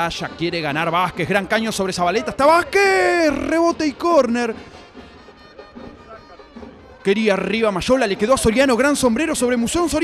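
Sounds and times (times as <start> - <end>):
distant crowd noise: 0.0 - 10.0.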